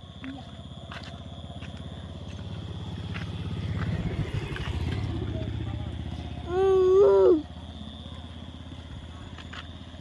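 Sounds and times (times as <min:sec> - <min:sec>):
motorcycle engine running: 0:00.0 - 0:10.0
person calling out: 0:06.5 - 0:07.4.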